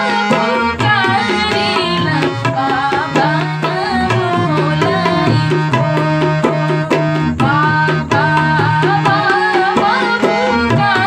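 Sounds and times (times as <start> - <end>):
harmonium drone: 0.0 - 11.0
tabla rhythm: 0.0 - 11.0
woman singing: 0.0 - 11.0.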